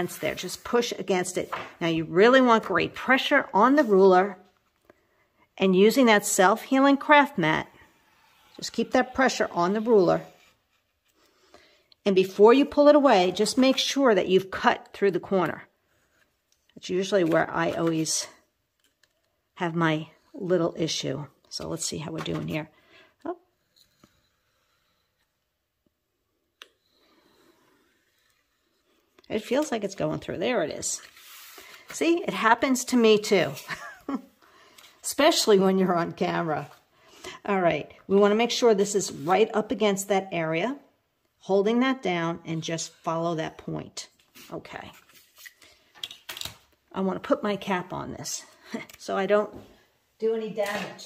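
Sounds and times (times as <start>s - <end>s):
light clicks and scrapes of tools: 23.6s - 25.4s
cardstock sliding and rustling: 31.0s - 32.0s.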